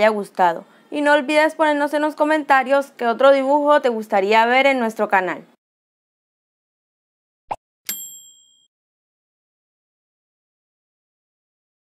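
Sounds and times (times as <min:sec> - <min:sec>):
bright bell ding: 0:07.9 - 0:08.7.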